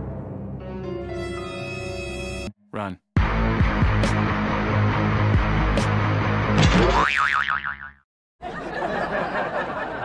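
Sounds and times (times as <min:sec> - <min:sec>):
cartoon boing effect: 0:06.6 - 0:08.0.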